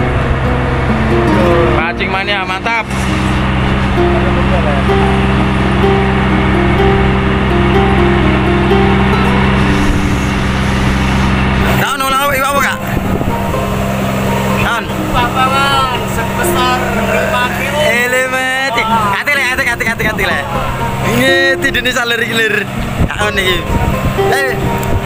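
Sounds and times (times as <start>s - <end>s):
boat motor humming: 0.0s - 25.0s
stepping melody: 0.0s - 25.0s
person speaking: 1.2s - 2.9s, 14.6s - 24.8s.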